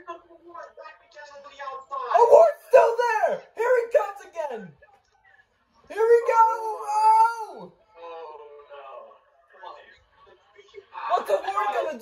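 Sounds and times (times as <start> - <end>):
person talking: 5.9 - 7.6
person yelling with excitement: 6.0 - 7.6.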